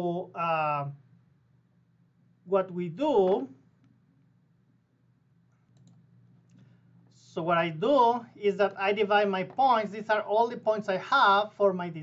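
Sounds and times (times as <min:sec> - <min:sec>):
soft clicks: 0:05.5 - 0:06.7.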